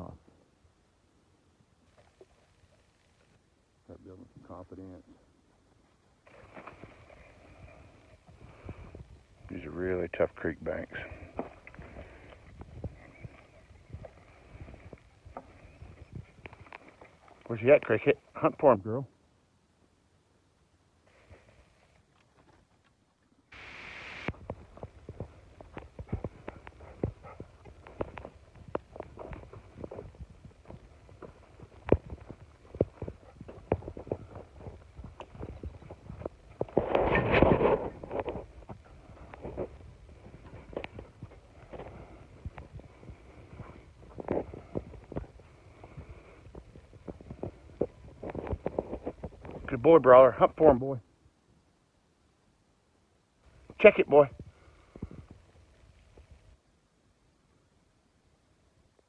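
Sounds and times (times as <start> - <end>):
brush scraping and rustling: 23.6 - 42.3.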